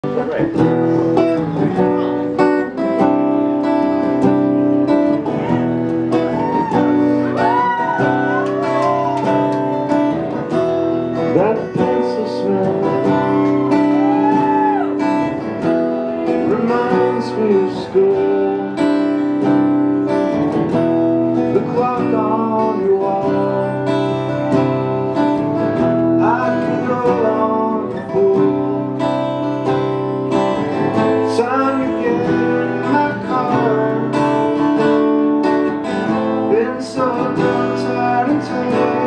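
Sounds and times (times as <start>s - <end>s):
acoustic guitars strumming chords: 0.0s - 39.0s.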